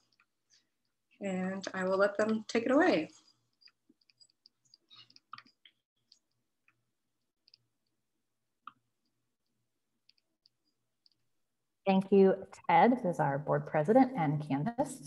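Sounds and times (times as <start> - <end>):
faint clicks and ticks: 0.0 - 11.6.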